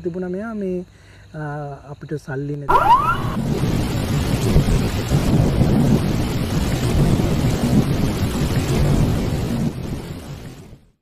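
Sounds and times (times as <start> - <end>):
thunder-like rumbling: 2.7 - 10.8.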